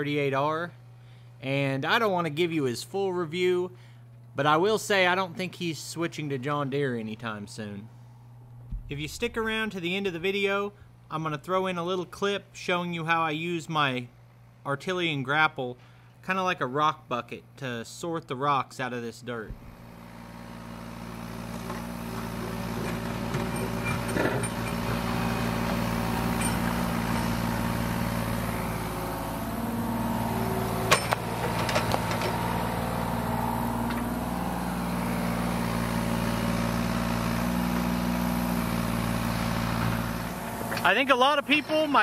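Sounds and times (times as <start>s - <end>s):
excavator diesel engine running: 19.8s - 42.0s.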